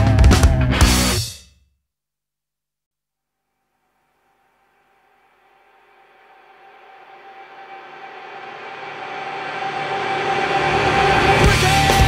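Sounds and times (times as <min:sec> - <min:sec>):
noisy swell with held tone: 0:03.9 - 0:12.0.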